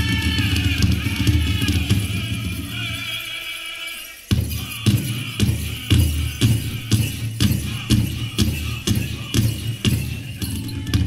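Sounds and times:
jingling bells: 0:00.0 - 0:11.0
people singing: 0:00.0 - 0:11.0
big drum steady beat: 0:04.3 - 0:11.0.

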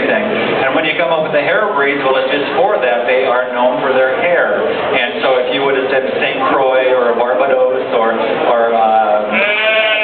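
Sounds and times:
sheep bleating: 0:09.3 - 0:10.0.

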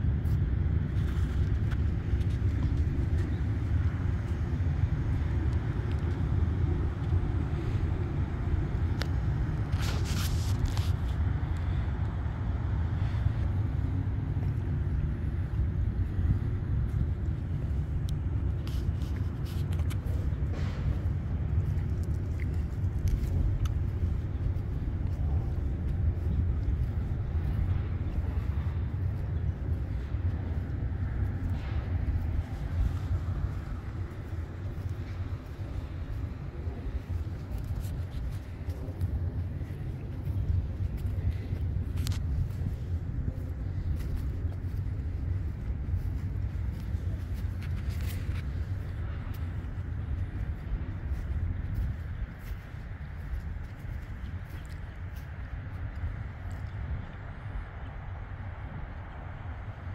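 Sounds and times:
low outdoor rumble: 0:00.0 - 0:59.9.

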